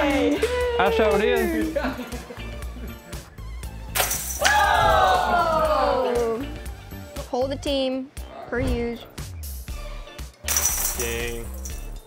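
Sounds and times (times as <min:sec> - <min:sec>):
disc hitting metal chains: 0:10.5 - 0:12.0.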